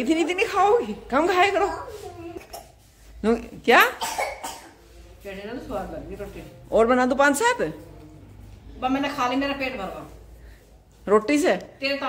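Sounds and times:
quiet talking: 0:04.1 - 0:11.8.

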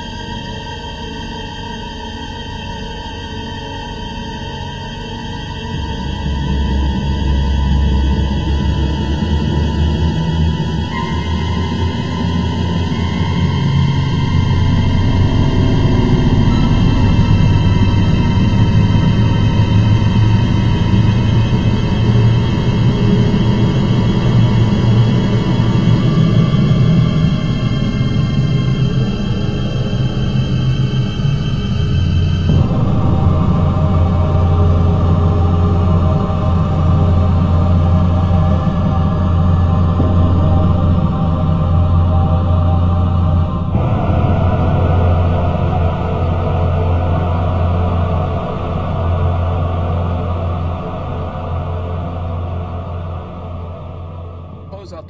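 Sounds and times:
background music with sustained tones: 0:00.0 - 0:54.9.

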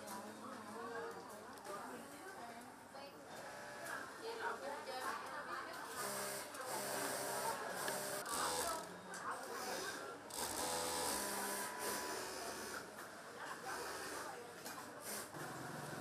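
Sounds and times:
sewing machine running: 0:09.8 - 0:12.8.

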